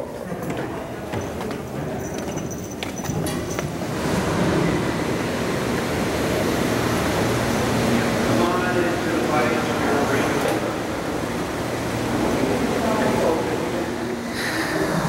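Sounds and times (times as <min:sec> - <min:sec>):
footsteps on stairs: 0:00.2 - 0:03.9
steady rushing noise: 0:03.8 - 0:15.0.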